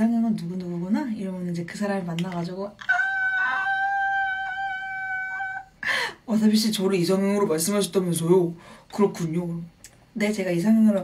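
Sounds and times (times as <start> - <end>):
woman squealing: 2.8 - 5.8.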